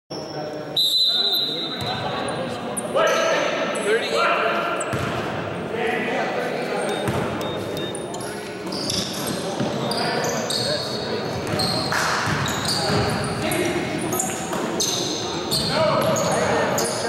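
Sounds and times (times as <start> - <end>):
players' voices: 0.1 - 17.0
basketball bouncing on wood floor: 12.2 - 13.2.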